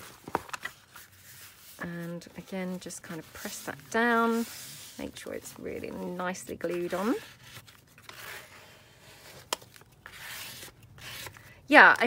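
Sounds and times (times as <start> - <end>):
paper rustling and scuffing: 0.0 - 11.5
hands rubbing paper envelope: 0.6 - 11.4.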